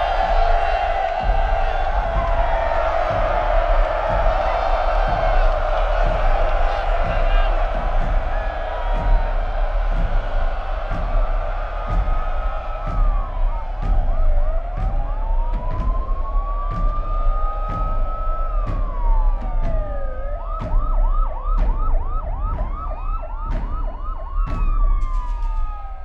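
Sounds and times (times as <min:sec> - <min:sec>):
sirens wailing: 0:00.0 - 0:26.0.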